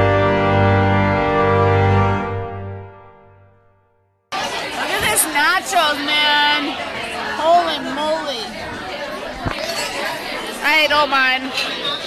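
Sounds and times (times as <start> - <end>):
restaurant chatter: 4.3 - 12.0.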